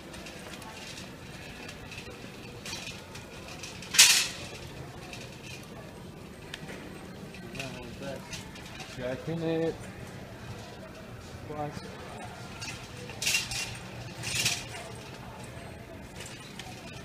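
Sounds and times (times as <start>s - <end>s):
shopping cart rattling on concrete: 0.0s - 6.5s, 7.2s - 9.8s, 12.0s - 17.0s
faint voices: 0.0s - 17.0s.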